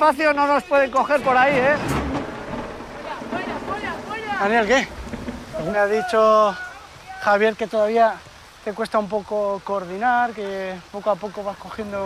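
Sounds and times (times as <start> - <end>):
outdoor hiss: 0.0 - 12.0
distant voices: 0.4 - 8.7
wind rumble on microphone: 1.0 - 7.0.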